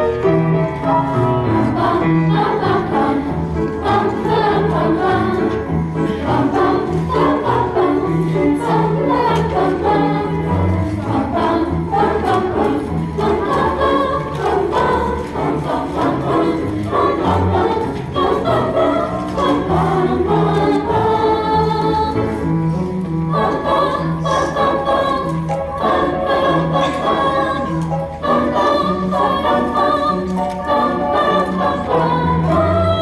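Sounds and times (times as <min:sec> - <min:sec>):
children's choir singing: 0:00.0 - 0:33.0
piano accompaniment: 0:00.0 - 0:33.0.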